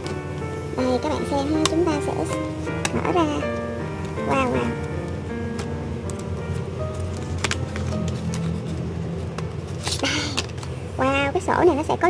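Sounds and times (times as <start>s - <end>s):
soft background music: 0.0s - 12.0s
paper box rustling: 5.6s - 10.8s.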